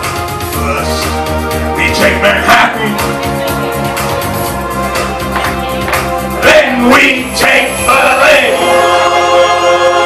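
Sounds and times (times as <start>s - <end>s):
man singing: 6.4s - 10.0s.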